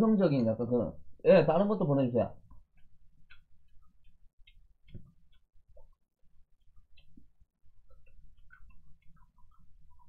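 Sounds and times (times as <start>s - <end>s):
faint chewing and mouth noises: 2.4s - 10.0s.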